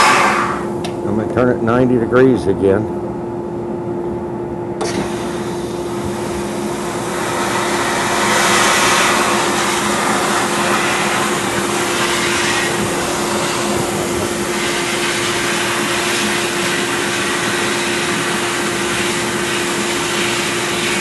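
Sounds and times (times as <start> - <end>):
steady hum: 0.0 - 21.0
hiss of shot blasting: 7.0 - 20.9.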